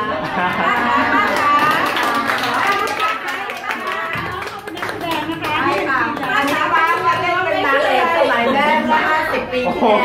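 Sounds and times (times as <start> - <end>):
people clapping: 0.0 - 7.8.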